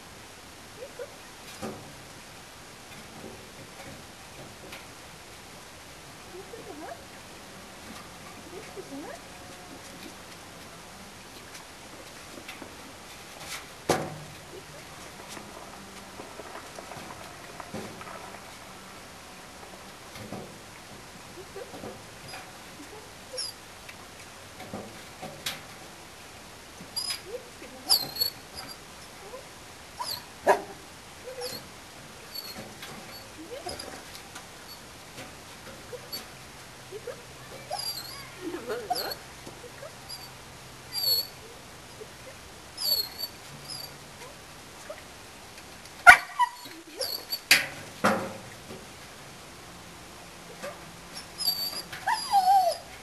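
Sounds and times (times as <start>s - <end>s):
small animal squeaking and whimpering: 23.3s - 23.6s, 30.0s - 30.3s, 31.3s - 31.6s, 32.3s - 34.0s, 37.6s - 38.3s, 38.9s - 39.2s, 40.0s - 41.5s, 42.8s - 44.0s, 46.3s - 47.5s, 50.5s - 52.9s
dog whimpering: 31.3s - 31.6s, 37.7s - 39.2s, 46.2s - 47.4s, 51.4s - 52.9s.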